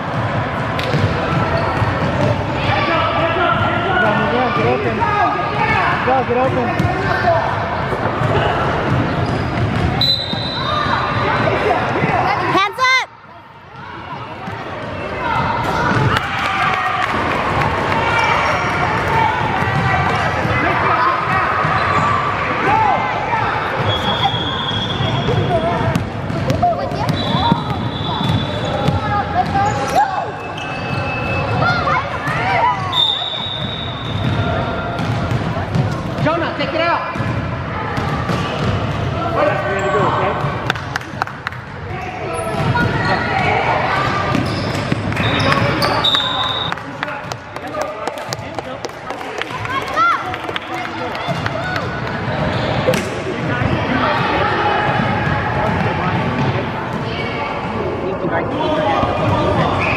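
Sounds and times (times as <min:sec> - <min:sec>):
hubbub of echoing voices: 0:00.0 - 0:59.9.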